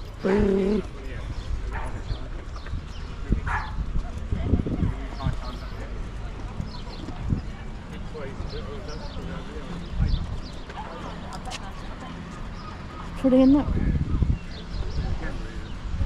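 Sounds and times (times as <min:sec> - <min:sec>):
footsteps on paved path: 0:00.0 - 0:16.0.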